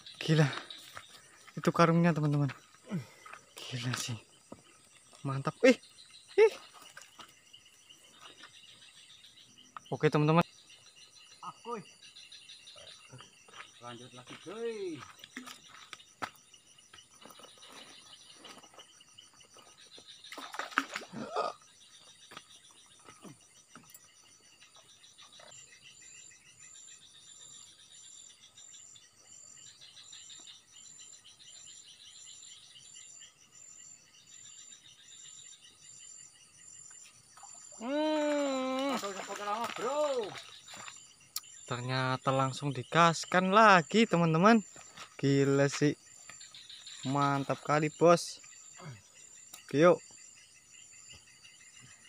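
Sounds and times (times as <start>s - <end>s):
insects chirping: 0.0s - 52.0s
person calling out: 37.8s - 40.4s.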